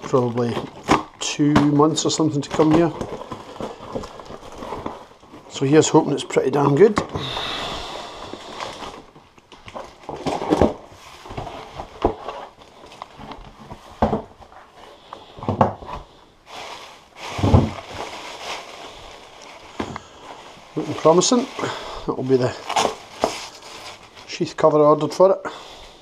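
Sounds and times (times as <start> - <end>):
rustling of cardboard and paper: 0.0 - 25.3
packing tape tearing: 22.5 - 24.1.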